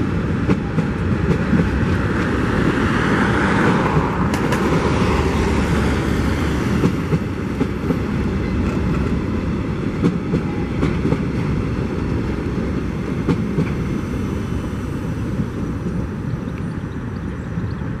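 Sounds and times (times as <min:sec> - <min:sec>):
freight train rumbling past: 0:00.0 - 0:18.0.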